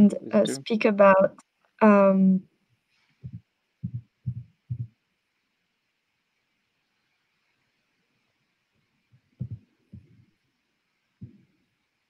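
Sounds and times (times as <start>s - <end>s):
muffled laptop thumps: 9.4s - 10.2s.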